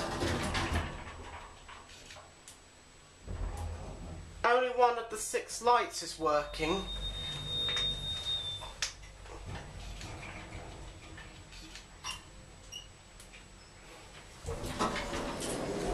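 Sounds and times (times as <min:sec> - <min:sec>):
sliding door opening: 0:00.0 - 0:02.2, 0:03.3 - 0:04.4, 0:06.8 - 0:12.9, 0:14.0 - 0:15.9
lift hum with high tone: 0:05.1 - 0:11.1.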